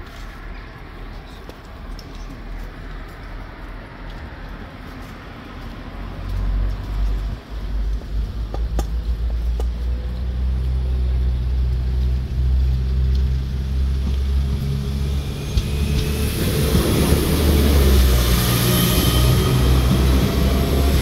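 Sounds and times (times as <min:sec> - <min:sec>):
train engine hum: 0:00.0 - 0:21.0
train rushing past: 0:09.9 - 0:21.0.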